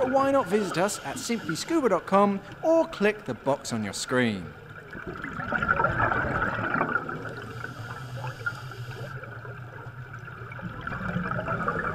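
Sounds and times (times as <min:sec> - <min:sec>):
air bubbles bubbling underwater: 0:04.8 - 0:07.9, 0:09.2 - 0:11.9.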